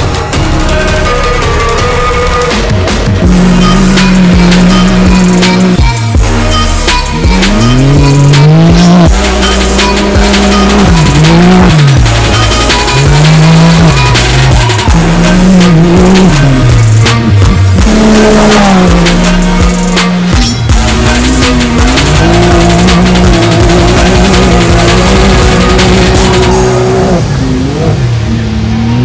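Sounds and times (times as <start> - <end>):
buggy engine revving: 0.0 - 29.0
music: 0.0 - 29.0.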